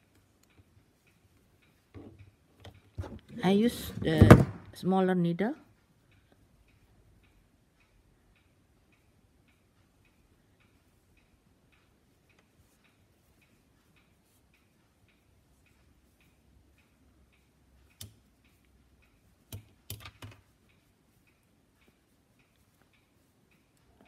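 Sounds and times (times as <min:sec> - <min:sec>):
faint ticking: 0:00.0 - 0:03.9, 0:04.8 - 0:24.0.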